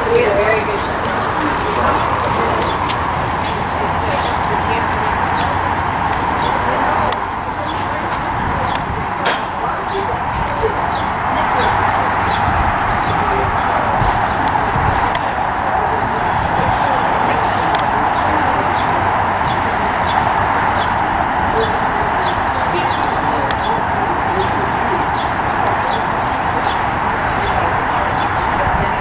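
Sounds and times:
horse hoofbeats on dirt: 0:00.0 - 0:09.2
murmuring voices: 0:00.0 - 0:29.0.

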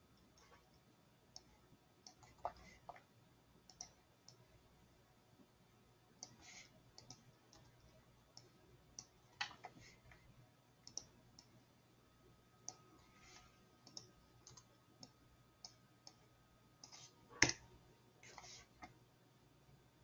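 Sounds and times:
faint steady low hum: 0:00.0 - 0:20.0
computer mouse and keyboard clicks: 0:01.4 - 0:03.1, 0:03.7 - 0:04.4, 0:06.2 - 0:10.2, 0:10.8 - 0:11.5, 0:12.7 - 0:16.2, 0:16.8 - 0:17.6.

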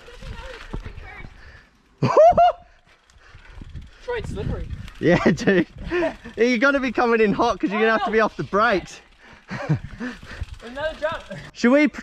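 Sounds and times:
mountain bike rattling on dirt: 0:00.0 - 0:11.6
man shouting excitedly: 0:06.4 - 0:09.0.

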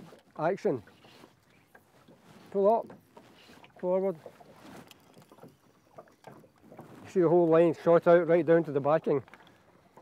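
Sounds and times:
water lapping against boat hull: 0:00.0 - 0:10.0.

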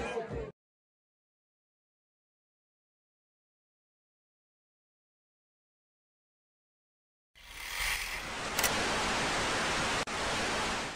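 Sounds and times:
sharp click: 0:07.9 - 0:08.7.

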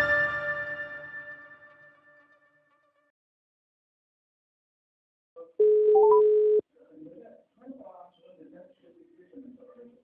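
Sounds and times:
telephone ringback tone: 0:05.6 - 0:06.6.

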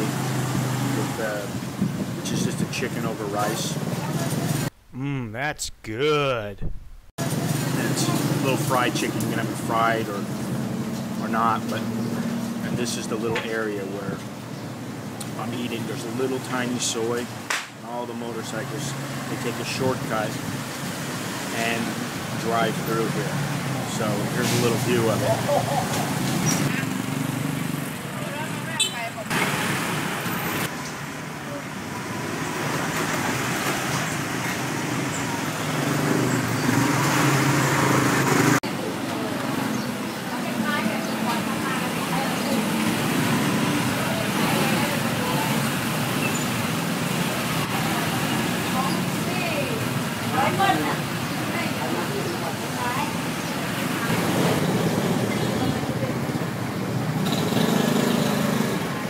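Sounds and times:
motorbikes and scooters passing: 0:00.0 - 0:04.7, 0:07.2 - 0:16.8, 0:18.5 - 0:59.0
traffic noise: 0:00.0 - 0:06.6, 0:07.2 - 0:59.0
background chatter: 0:38.6 - 0:46.0, 0:47.5 - 0:56.9.

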